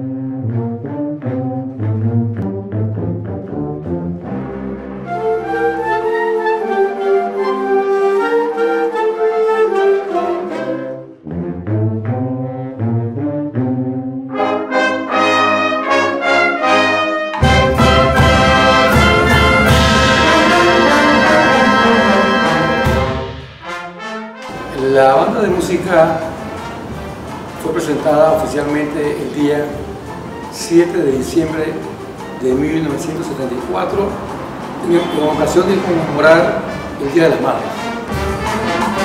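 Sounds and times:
concert band playing: 16.6s - 39.0s.

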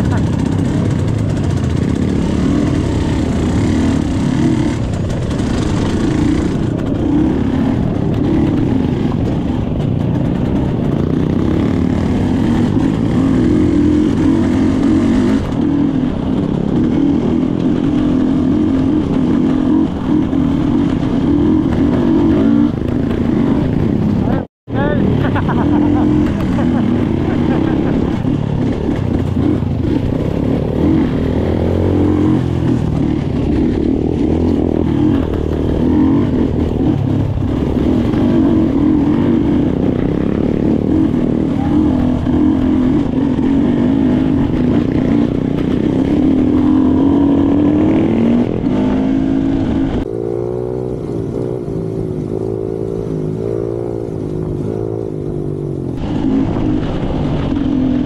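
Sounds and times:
dirt bike engine: 0.0s - 58.0s.

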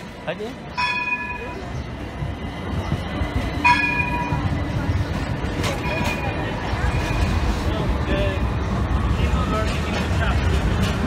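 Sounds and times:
tram warning bell: 0.0s - 7.9s
tram rumbling past: 0.0s - 11.0s.

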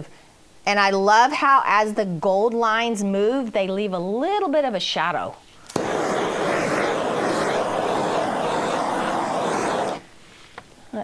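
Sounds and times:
gas torch flame hissing: 5.6s - 10.2s.

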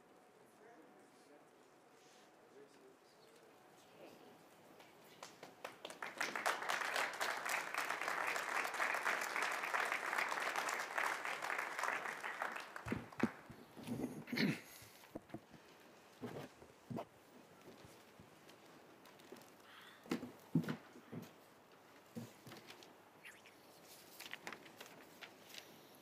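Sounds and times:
audience applauding: 5.2s - 14.0s.

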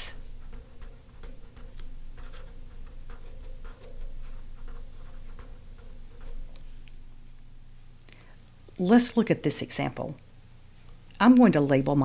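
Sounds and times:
faint low hum: 0.0s - 12.0s
marker pen scratching on paper: 0.1s - 6.7s.

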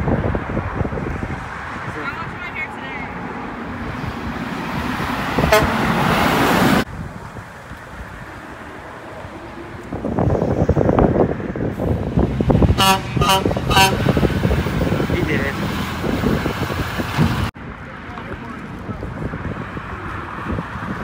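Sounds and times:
dump truck passing: 3.0s - 21.0s
diesel engine pulling away: 3.6s - 17.5s
truck horn toots: 5.4s - 6.2s, 12.6s - 14.4s.

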